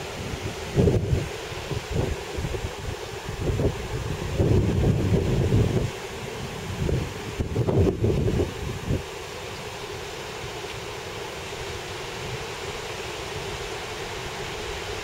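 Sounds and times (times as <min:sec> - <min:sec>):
wind buffeting microphone: 0:00.0 - 0:09.1.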